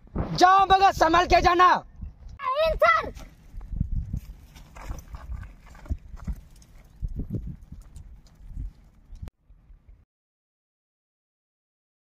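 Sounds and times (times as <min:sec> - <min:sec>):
wind rumble on microphone: 0:00.0 - 0:02.4, 0:03.2 - 0:10.0
footsteps on dry dirt: 0:03.1 - 0:09.3.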